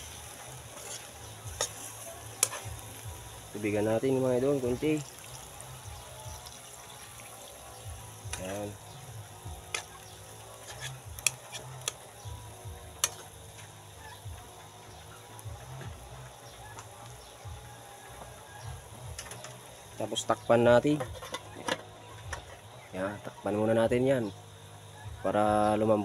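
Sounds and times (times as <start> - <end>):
food sizzling in a pan: 0.0 - 26.0.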